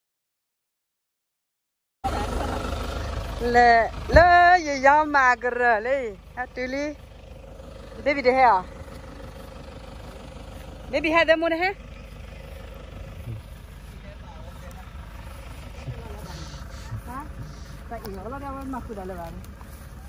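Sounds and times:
steady low rumble: 2.0 - 20.0.

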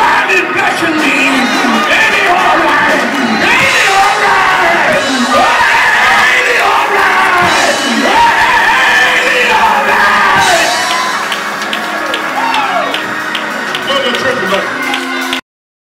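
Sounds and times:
preacher chanting through microphone: 0.0 - 10.8.

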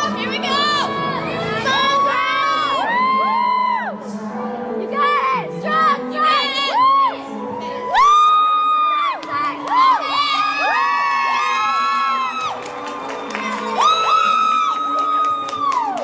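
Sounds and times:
recorded music: 0.0 - 16.0
spectators cheering and whooping: 1.7 - 4.0, 6.7 - 16.0.

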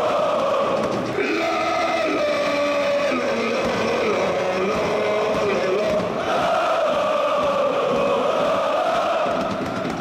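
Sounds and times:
crowd chanting in unison: 0.0 - 10.0.

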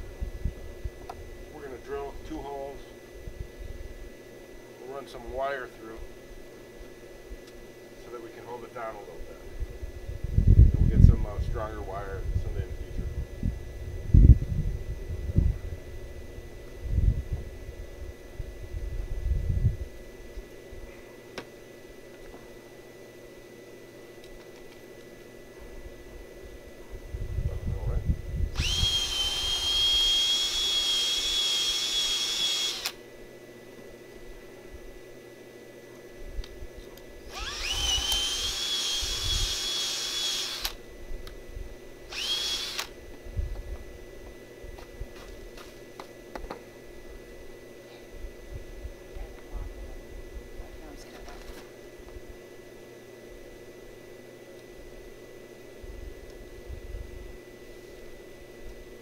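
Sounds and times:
cordless drill whining into wood: 28.5 - 33.0, 37.3 - 40.8, 42.1 - 42.9.

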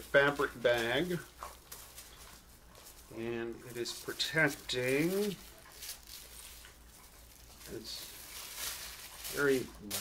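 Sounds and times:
person speaking: 0.0 - 1.4, 3.0 - 5.6, 7.6 - 10.0
plastic bag crinkling: 0.0 - 10.0.

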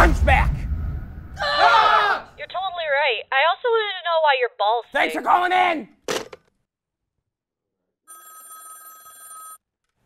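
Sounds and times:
telephone bell ringing: 8.1 - 9.6.

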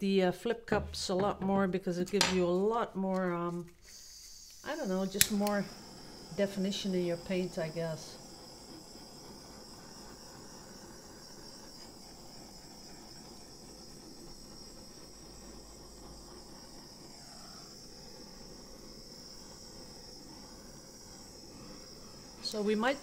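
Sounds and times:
low even hiss: 4.6 - 23.0.

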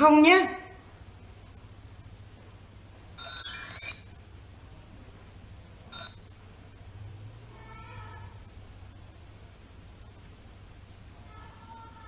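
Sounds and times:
jingling chime rising in pitch: 3.2 - 4.2.

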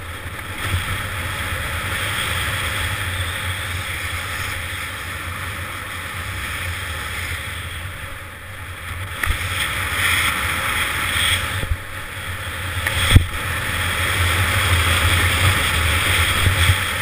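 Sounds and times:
skis hissing on snow: 0.4 - 8.4, 9.2 - 17.0.

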